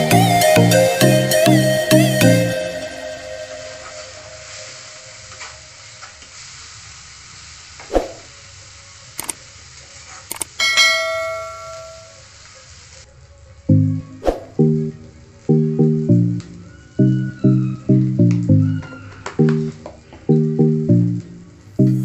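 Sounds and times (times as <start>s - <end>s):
masala sizzling in a frying pan: 3.2s - 13.7s
bell-like chime: 10.6s - 12.2s.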